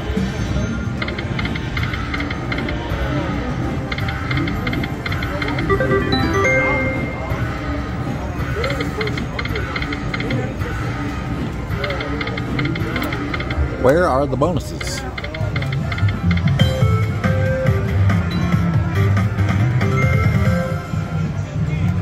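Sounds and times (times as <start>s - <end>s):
casino background music: 0.8s - 10.6s, 11.4s - 22.0s
slot machine reel spin ticks: 1.0s - 2.9s, 3.8s - 7.6s, 8.6s - 10.5s, 11.8s - 13.7s, 14.6s - 16.8s
casino voices: 4.3s - 7.3s
stepped chime tones: 5.6s - 7.6s.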